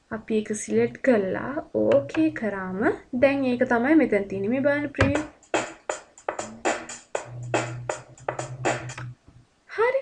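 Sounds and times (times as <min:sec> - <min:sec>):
electronic drum loop: 0:05.0 - 0:09.2.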